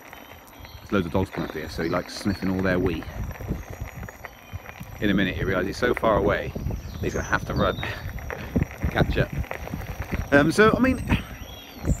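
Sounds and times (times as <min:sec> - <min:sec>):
tyres crunching on gravel: 0:00.0 - 0:12.0
wind rumble on microphone: 0:00.3 - 0:12.0.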